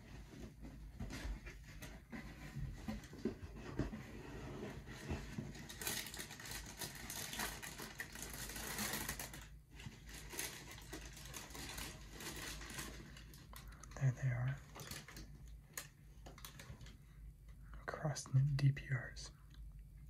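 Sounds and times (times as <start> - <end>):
tissue paper crinkling: 4.6 - 17.0.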